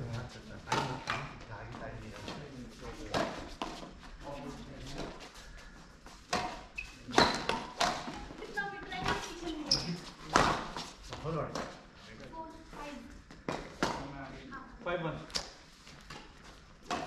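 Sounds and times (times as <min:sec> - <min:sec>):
rackets hitting shuttlecock: 0:06.3 - 0:08.4, 0:09.0 - 0:10.8.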